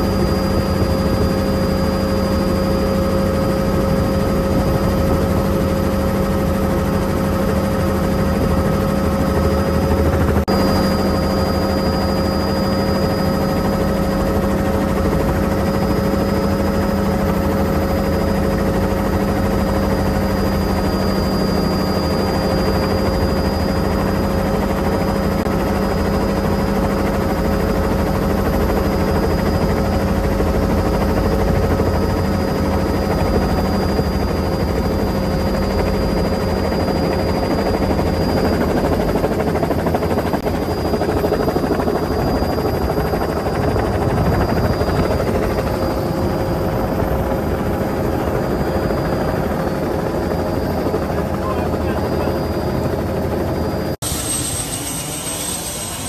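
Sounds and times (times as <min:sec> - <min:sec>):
helicopter engine and rotor: 0:00.0 - 0:56.0.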